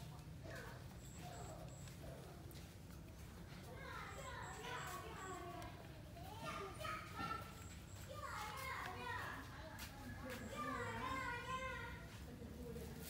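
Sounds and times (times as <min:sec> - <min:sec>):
children chattering and calling: 0:00.0 - 0:13.0.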